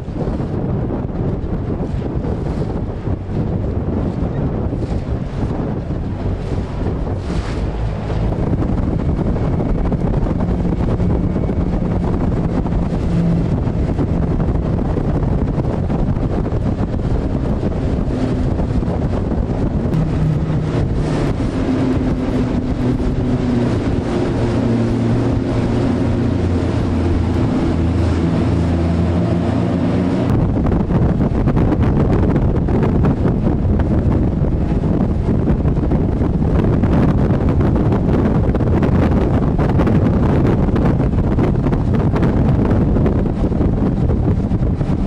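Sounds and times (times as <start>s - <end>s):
motorboat engine running: 0.0s - 45.0s
rushing water: 0.0s - 45.0s
wind buffeting microphone: 0.0s - 45.0s.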